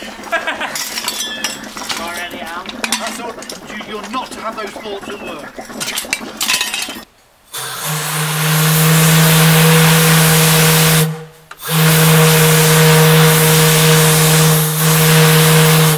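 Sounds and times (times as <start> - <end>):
rush of steam: 7.5 - 15.9
steam whistle blasts: 7.5 - 15.9.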